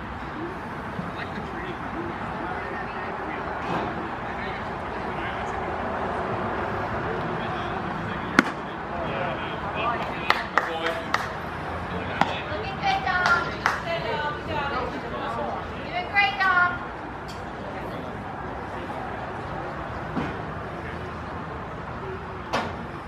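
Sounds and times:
spectators chatting: 0.0 - 23.0
baseball bat crack: 8.3 - 8.7, 12.1 - 12.4.

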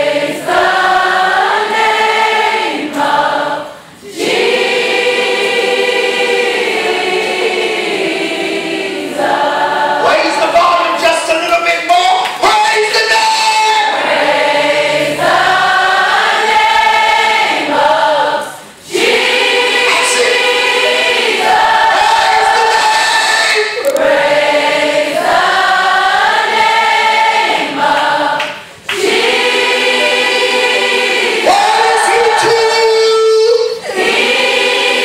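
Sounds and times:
women and girls singing gospel chorus: 0.0 - 11.2, 12.5 - 35.0.

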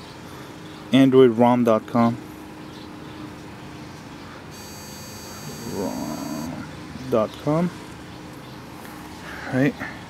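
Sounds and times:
high-pitched electronic tone: 4.5 - 6.6.

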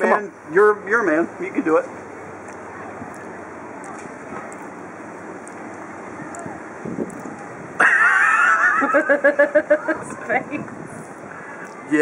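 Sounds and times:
outdoor background noise: 0.0 - 12.0
person laughing loudly: 7.8 - 10.6.

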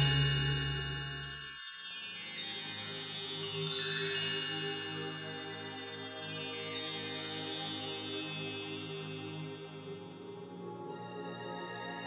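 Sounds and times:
sustained music chords: 0.0 - 1.5
chime-like shimmer: 0.0 - 10.1.

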